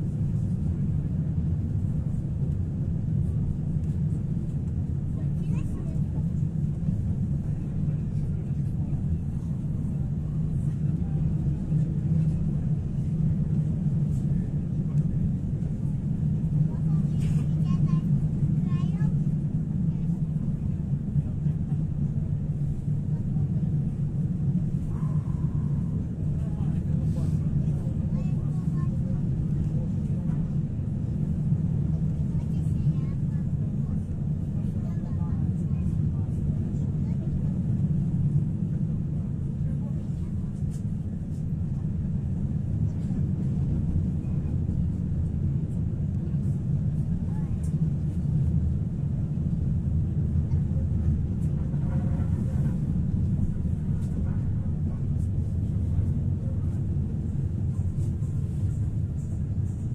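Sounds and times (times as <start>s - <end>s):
tram wheels rumbling on rails: 0.0s - 59.9s.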